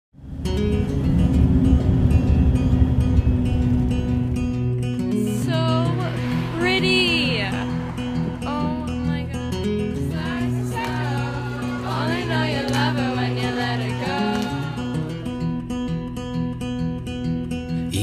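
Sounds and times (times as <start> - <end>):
strummed acoustic guitar: 0.2 - 18.0
person singing: 8.4 - 15.3, 17.8 - 18.0.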